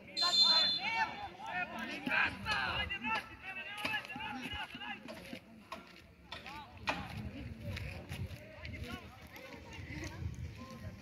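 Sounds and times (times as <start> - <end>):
people calling and shouting: 0.0 - 11.0.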